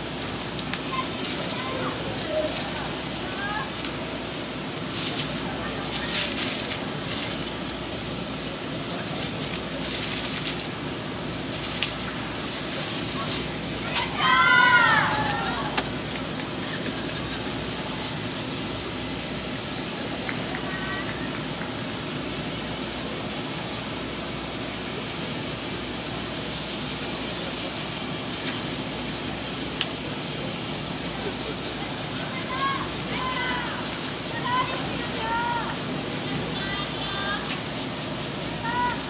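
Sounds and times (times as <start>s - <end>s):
faint distant voices: 0.8s - 21.6s.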